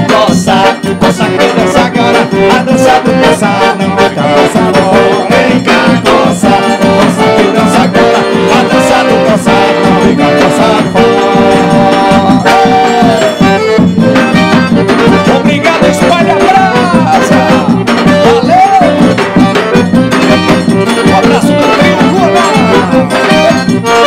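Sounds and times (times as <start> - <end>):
acoustic guitar: 0.0 - 24.0
piano accordion melody: 0.0 - 24.0
zabumba drum beat: 0.0 - 24.0.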